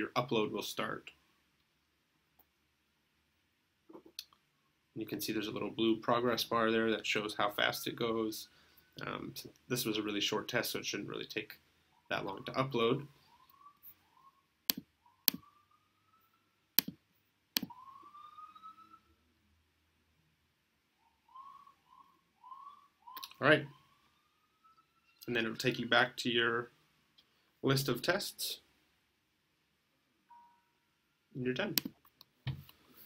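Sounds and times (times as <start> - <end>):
sharp clicks: 14.7 - 15.4, 16.8 - 17.0
short faint chime: 30.3 - 30.9.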